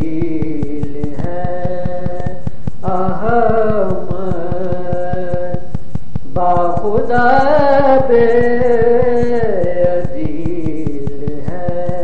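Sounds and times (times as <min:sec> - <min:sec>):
backing drone: 0:00.0 - 0:12.0
fast clicking pulse: 0:00.0 - 0:12.0
man chanting: 0:00.0 - 0:12.0.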